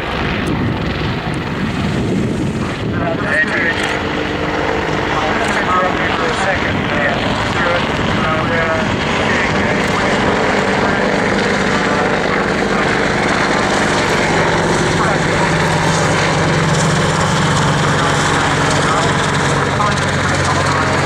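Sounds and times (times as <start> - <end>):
helicopter flying low: 0.0 - 21.0.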